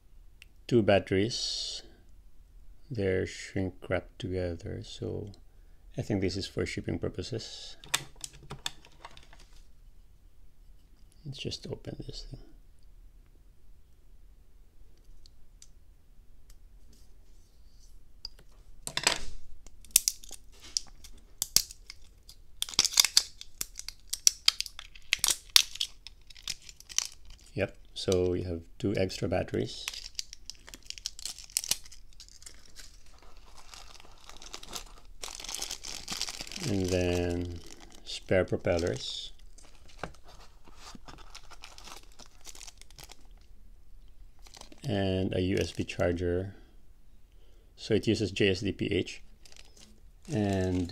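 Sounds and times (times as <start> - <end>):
shrink wrap tearing and crinkling: 19.8 - 28.2, 29.6 - 43.5, 44.4 - 44.9, 49.2 - 50.9.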